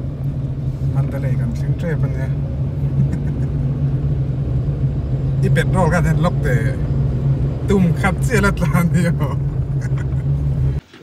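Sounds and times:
car engine and tyre noise: 0:00.0 - 0:11.0.

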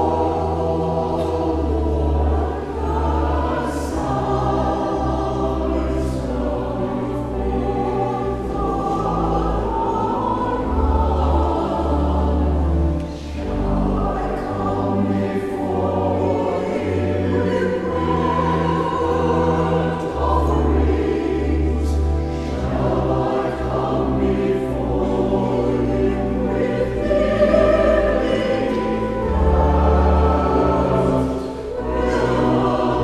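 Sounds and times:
choir singing: 0:00.0 - 0:33.0
pipe organ: 0:00.0 - 0:33.0.

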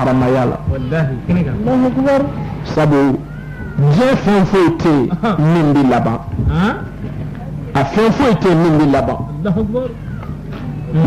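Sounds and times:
man's voice wavering syllables: 0:00.0 - 0:06.9.

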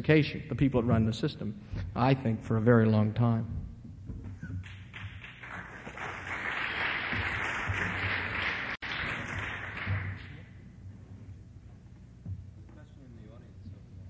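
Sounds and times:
audience applause: 0:04.6 - 0:10.6.

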